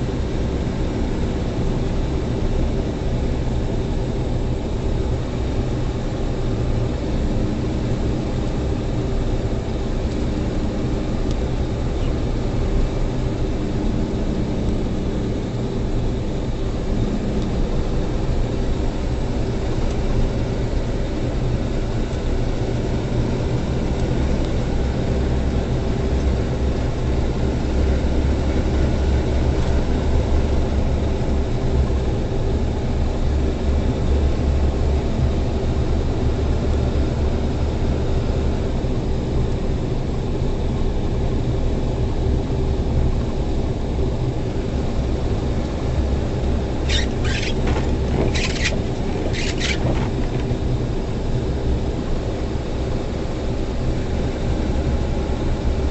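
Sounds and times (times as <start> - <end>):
road noise: 0.0 - 55.9
truck diesel engine drone: 0.0 - 55.9.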